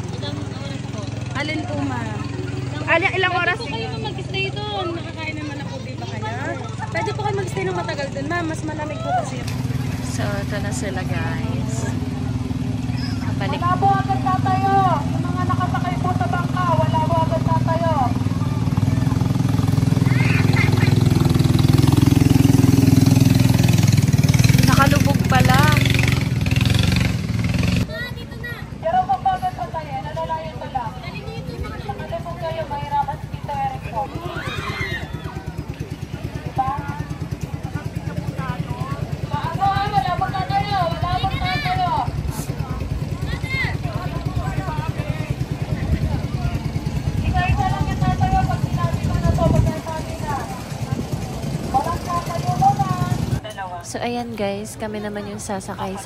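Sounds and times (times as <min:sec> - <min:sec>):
people calling out: 0:00.0 - 0:09.5, 0:11.4 - 0:21.5, 0:27.9 - 0:53.4
boat engine running: 0:00.0 - 0:56.0.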